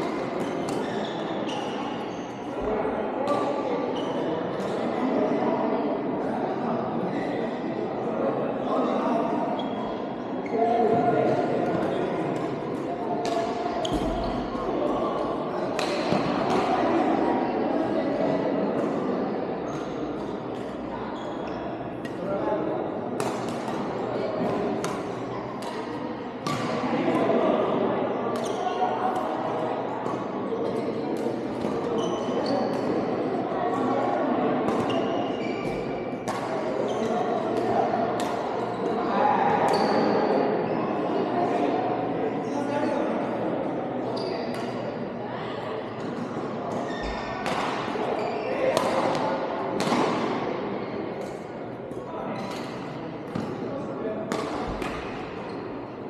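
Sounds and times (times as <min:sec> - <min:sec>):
echoing sports hall din: 0:00.0 - 0:56.0
murmur of voices: 0:00.0 - 0:56.0.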